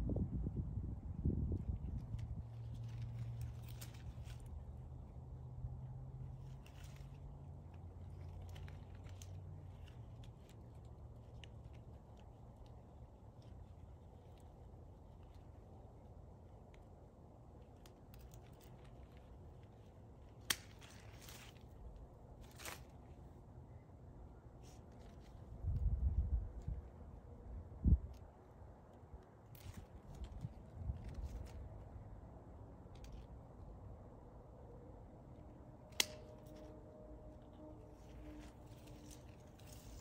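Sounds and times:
low hum: 0:00.0 - 0:40.0
leaves rustling: 0:01.4 - 0:28.3, 0:29.2 - 0:32.2, 0:35.8 - 0:36.7, 0:37.4 - 0:40.0
shears snipping twigs: 0:02.1 - 0:05.0, 0:17.7 - 0:23.0, 0:35.9 - 0:36.7, 0:38.2 - 0:40.0.

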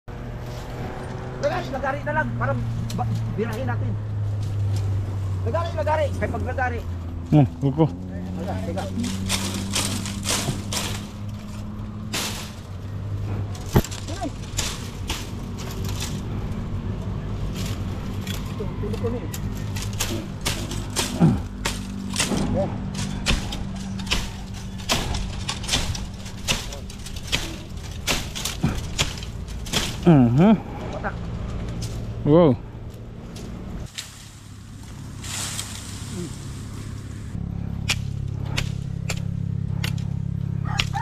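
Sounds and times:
machete chopping bamboo: 0:09.0 - 0:12.7, 0:13.4 - 0:16.2, 0:19.4 - 0:30.5, 0:37.8 - 0:41.0.

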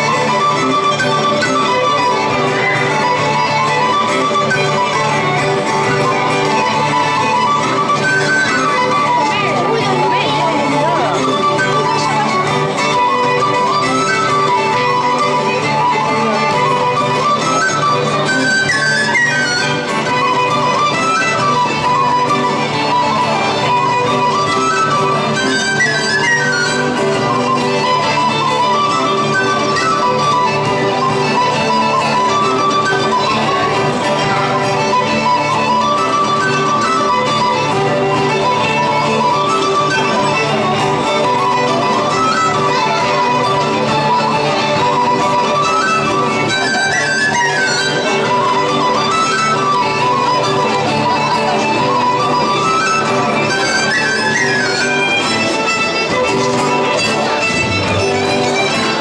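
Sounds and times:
acoustic guitar accompaniment: 0:00.0 - 0:59.0
fiddle melody: 0:00.0 - 0:59.0
tin whistle melody: 0:13.0 - 0:56.2.

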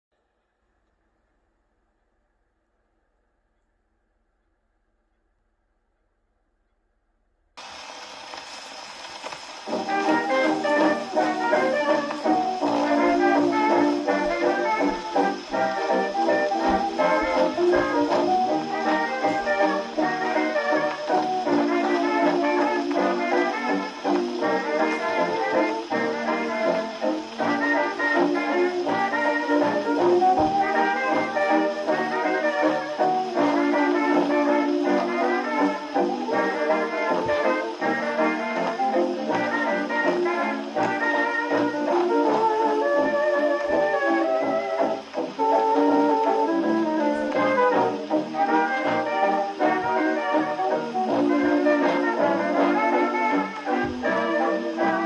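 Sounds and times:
record surface hiss: 0:00.1 - 0:55.0
dance band playing on record: 0:09.5 - 0:42.9.

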